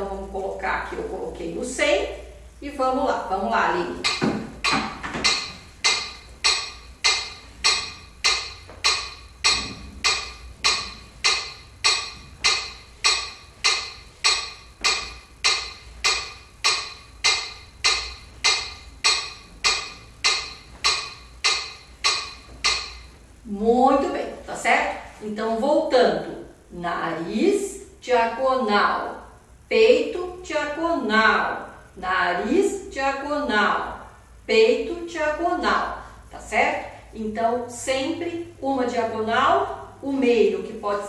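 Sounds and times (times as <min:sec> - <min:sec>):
metronome clicking: 0:03.2 - 0:23.3.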